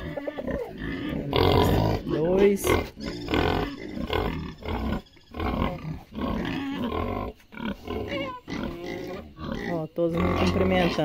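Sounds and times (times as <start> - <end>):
pigs grunting: 0.0 - 11.0.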